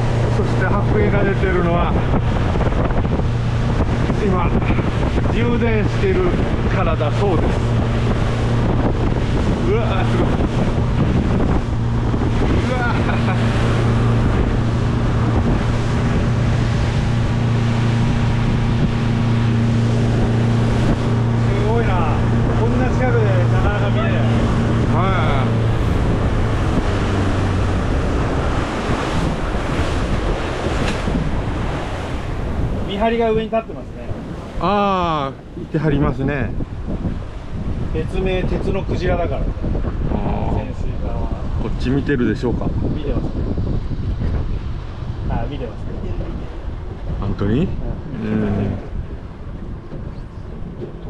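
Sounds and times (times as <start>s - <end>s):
boat engine low hum: 0.0s - 51.0s
water rushing along hull: 0.0s - 51.0s
wind buffeting microphone: 0.0s - 51.0s.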